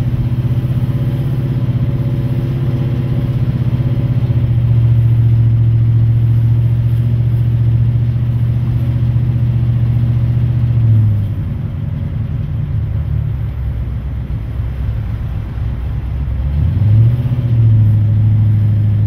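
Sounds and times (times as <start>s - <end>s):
car engine running: 0.0s - 19.0s.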